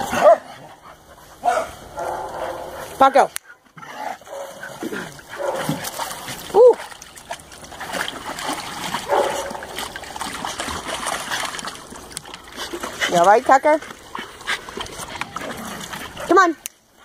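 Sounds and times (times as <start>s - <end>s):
dogs splashing in water: 0.0s - 17.0s.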